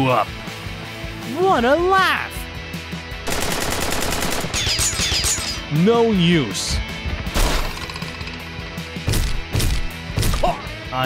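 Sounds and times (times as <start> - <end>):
machine-gun burst: 3.3 - 5.3.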